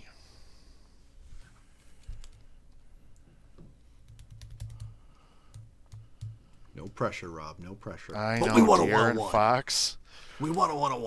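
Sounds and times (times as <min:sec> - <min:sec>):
typing on computer keyboard: 0:04.1 - 0:07.0.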